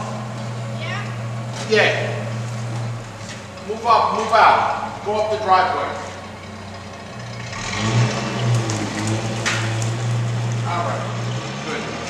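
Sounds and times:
car engine accelerating: 0.0 - 12.0.

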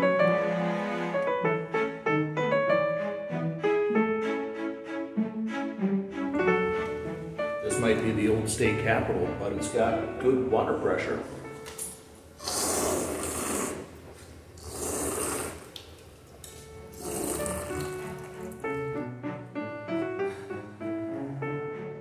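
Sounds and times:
piano music: 0.0 - 12.4, 16.4 - 22.0
person sipping water: 11.9 - 18.8
drinking fountain water stream: 14.6 - 18.8.

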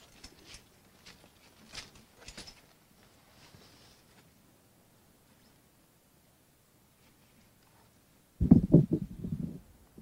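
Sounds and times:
low outdoor background: 0.0 - 10.0
rustles: 0.0 - 10.0.

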